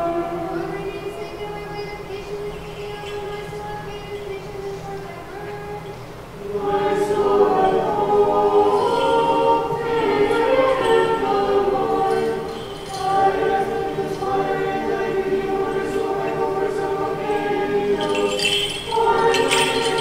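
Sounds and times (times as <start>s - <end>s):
choir singing a cappella: 0.0s - 20.0s.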